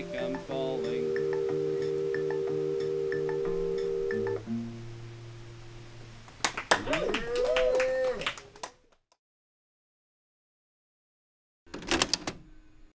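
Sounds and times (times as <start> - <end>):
live band chord: 0.0 - 5.8
music with sweeping tones: 0.0 - 6.1.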